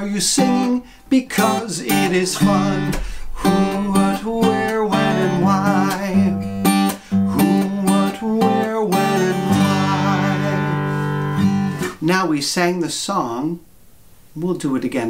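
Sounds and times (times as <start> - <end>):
man singing: 0.0 - 11.2
acoustic guitar strumming: 0.0 - 12.5.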